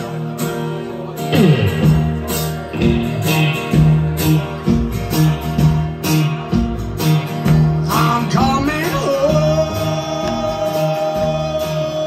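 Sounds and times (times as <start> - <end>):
rockabilly band playing: 0.0 - 12.0.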